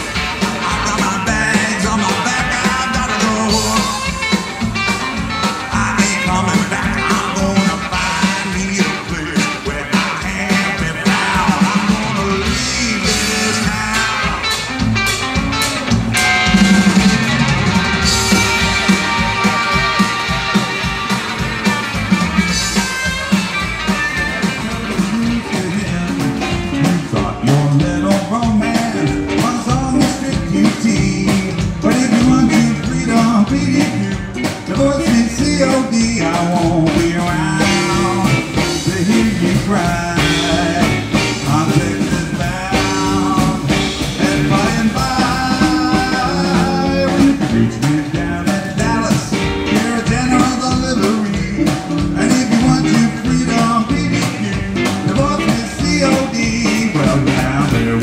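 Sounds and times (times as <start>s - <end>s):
drums steady beat: 0.0s - 58.0s
electric guitar lead: 0.0s - 58.0s
upright bass: 0.0s - 58.0s.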